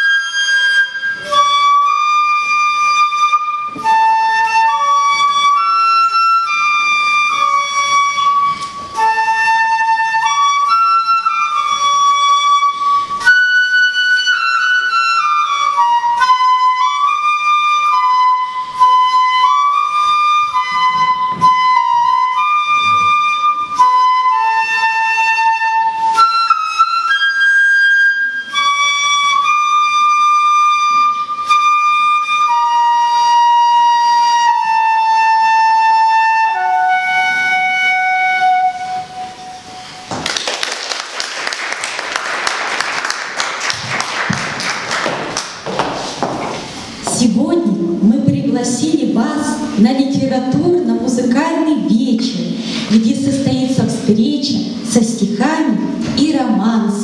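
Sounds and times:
solo flute melody: 0.0s - 40.5s
audience applause: 40.1s - 46.4s.

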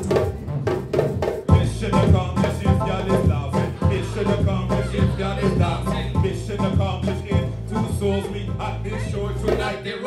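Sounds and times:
live band music: 0.0s - 9.8s
bass guitar: 0.0s - 9.9s.

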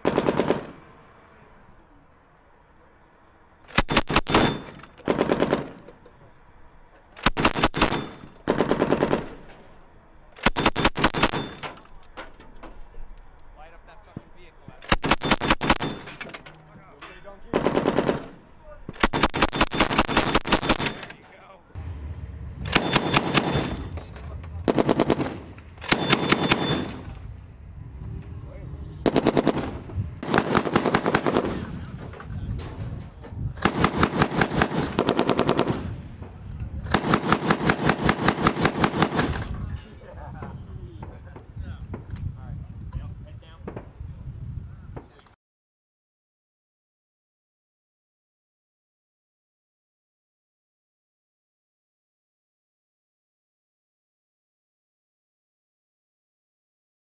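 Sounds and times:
grenade launcher firing bursts: 0.0s - 0.8s, 3.7s - 5.8s, 7.2s - 9.4s, 10.4s - 11.6s, 14.9s - 16.2s, 17.5s - 18.4s, 19.0s - 21.1s, 22.7s - 23.9s, 24.7s - 27.0s, 29.0s - 31.8s, 33.6s - 36.0s, 36.9s - 39.5s.

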